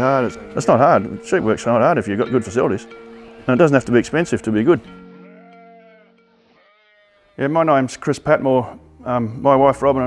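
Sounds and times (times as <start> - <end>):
background music: 0.0 - 10.0
sheep bleating: 5.0 - 7.8.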